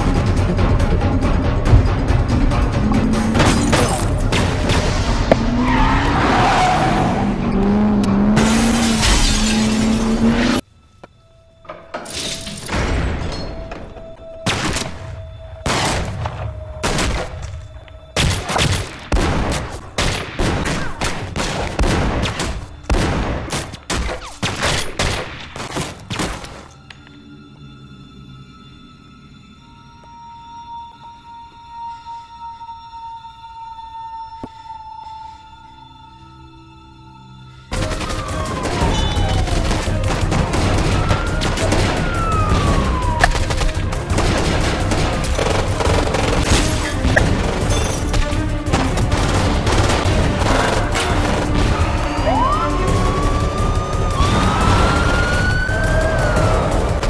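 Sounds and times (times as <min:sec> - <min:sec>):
tense sustained music: 0:00.0 - 0:20.7, 0:26.1 - 0:57.0
dramatic soundtrack music: 0:00.0 - 0:57.0.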